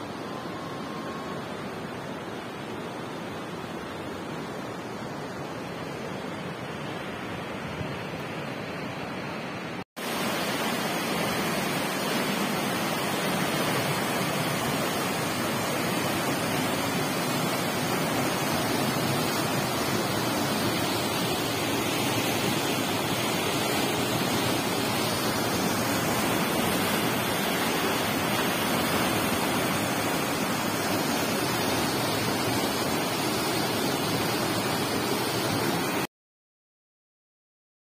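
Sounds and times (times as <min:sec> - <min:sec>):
flowing water rushing: 0:00.0 - 0:36.1.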